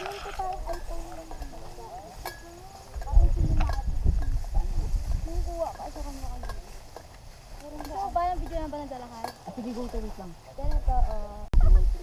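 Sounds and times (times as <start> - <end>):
walking through tall grass: 0.0 - 11.2
indistinct background chatter: 0.0 - 12.0.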